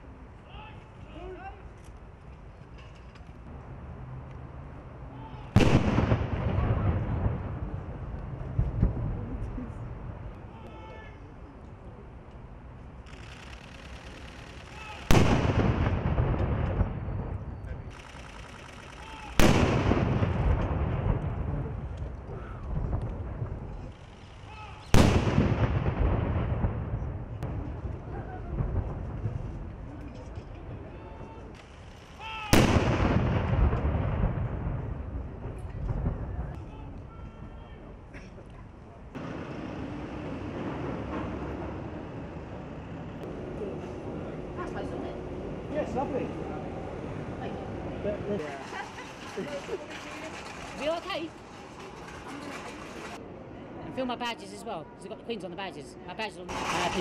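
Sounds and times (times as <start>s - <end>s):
cannon shots with rolling echo: 5.6s - 9.3s, 13.0s - 29.7s, 31.6s - 36.6s.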